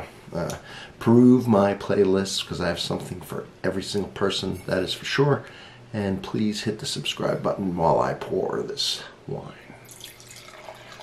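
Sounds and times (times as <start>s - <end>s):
wine pouring into glass: 9.8s - 11.0s.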